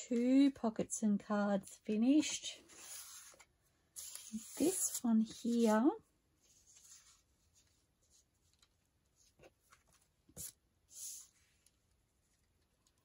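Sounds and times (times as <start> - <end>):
paper rustle: 2.2 - 11.7.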